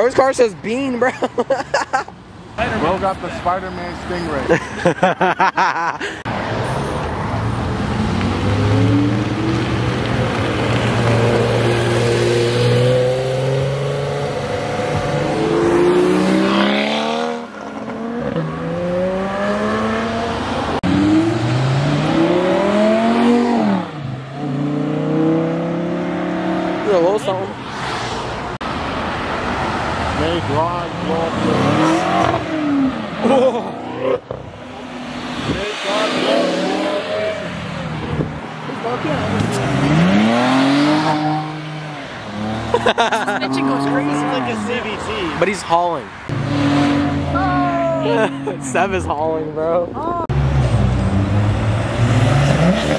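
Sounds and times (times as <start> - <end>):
sports car engines revving: 0.0 - 52.9.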